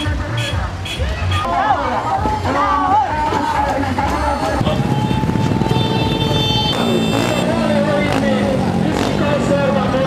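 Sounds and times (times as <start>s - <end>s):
vehicle engine running: 3.2s - 10.0s.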